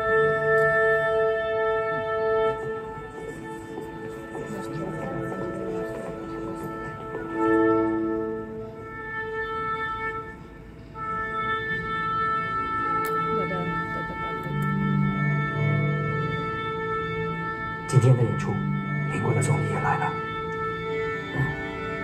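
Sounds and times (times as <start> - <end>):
orchestral music: 0.0 - 22.0.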